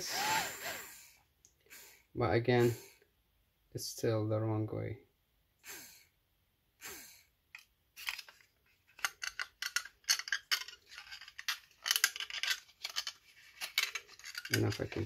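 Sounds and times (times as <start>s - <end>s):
plastic parts clicking and rattling: 7.5s - 15.0s.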